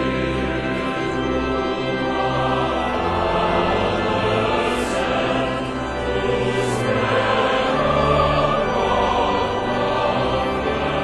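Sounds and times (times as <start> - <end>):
men's choir singing: 0.0 - 11.0.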